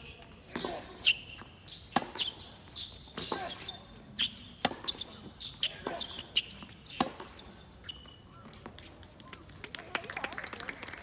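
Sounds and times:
shoe squeaks on court: 0:00.0 - 0:09.0
tennis ball bounces: 0:00.4 - 0:02.4, 0:04.5 - 0:08.7
tennis racket strikes: 0:00.5 - 0:02.4, 0:04.6 - 0:06.1, 0:06.9 - 0:07.4.

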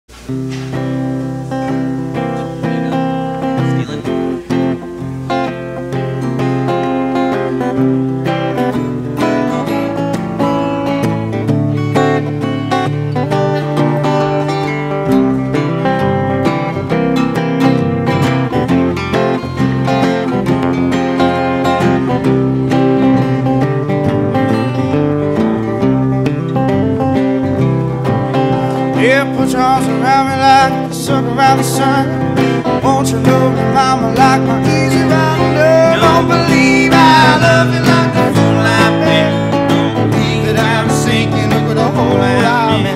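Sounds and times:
acoustic guitars strumming blues: 0:00.1 - 0:42.9.

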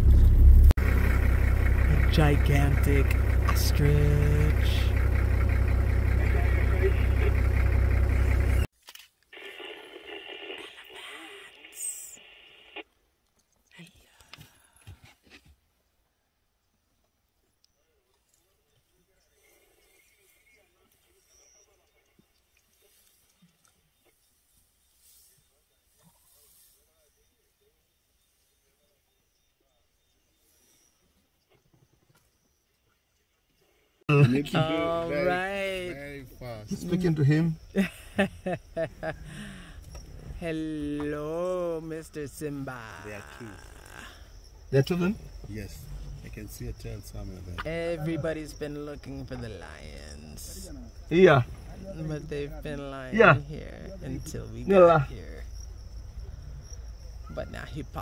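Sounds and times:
car engine running: 0:00.0 - 0:08.7, 0:34.1 - 0:43.2, 0:44.5 - 0:50.1.

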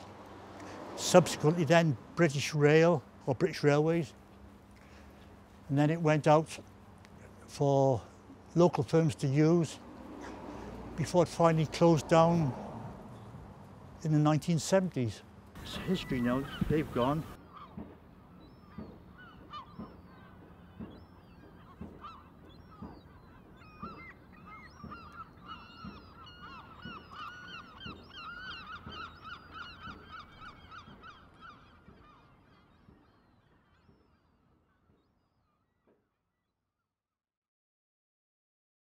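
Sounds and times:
geese calling: 0:14.6 - 0:33.3.

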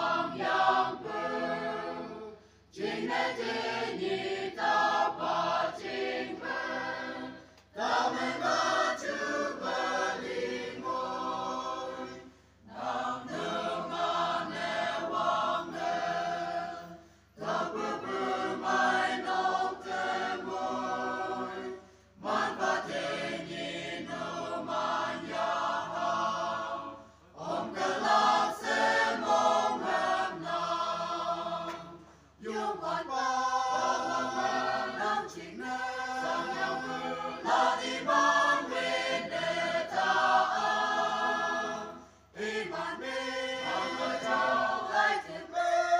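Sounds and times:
choir singing: 0:00.0 - 0:45.9.

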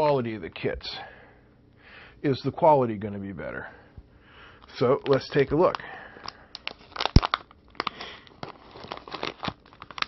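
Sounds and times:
plastic bag crinkling: 0:04.6 - 0:10.0.

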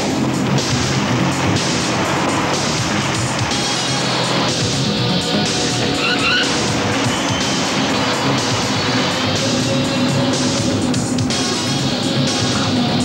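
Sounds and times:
dramatic film music: 0:00.0 - 0:13.0
vehicle engine running hard: 0:00.0 - 0:13.0
rising squeal: 0:00.5 - 0:12.5.

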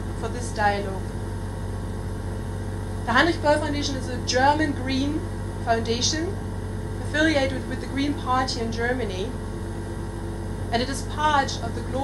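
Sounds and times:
mains hum: 0:00.0 - 0:12.0.

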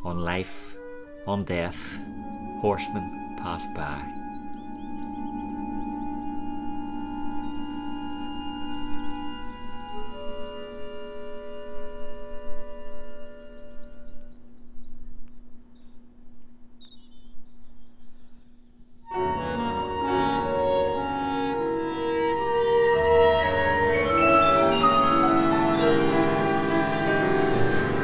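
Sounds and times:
held organ-like chords: 0:00.0 - 0:16.1, 0:17.2 - 0:28.0
pitched ensemble music: 0:00.6 - 0:14.1, 0:19.1 - 0:28.0.

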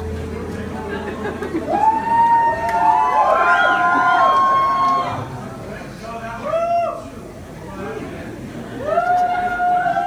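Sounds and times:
concert crowd cheering: 0:01.4 - 0:05.4, 0:08.8 - 0:10.0.

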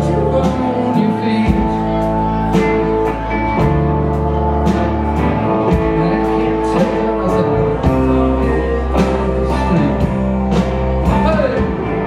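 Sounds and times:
bass guitar: 0:00.0 - 0:12.0
drums keeping a steady beat: 0:00.0 - 0:12.0
electric guitars: 0:00.0 - 0:12.0
keyboard: 0:00.0 - 0:12.0
steel guitar: 0:00.0 - 0:12.0.

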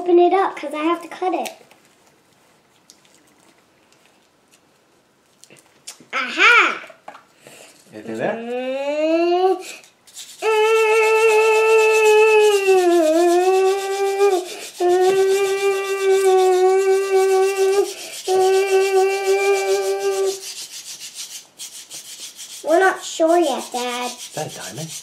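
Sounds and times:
child singing long notes: 0:10.4 - 0:20.4.

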